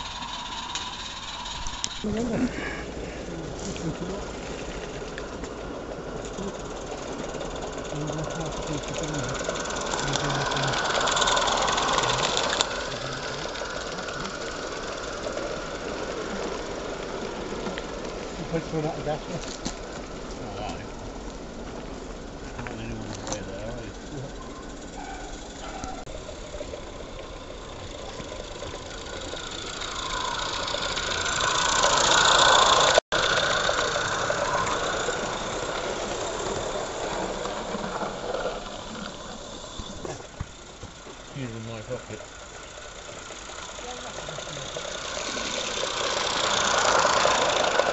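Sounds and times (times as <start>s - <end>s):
steam hiss: 0.0s - 5.3s, 6.2s - 20.2s, 22.8s - 47.9s
model train rumbling: 0.0s - 47.9s
outdoor background: 0.0s - 47.9s
steam locomotive chuffing: 0.0s - 47.9s.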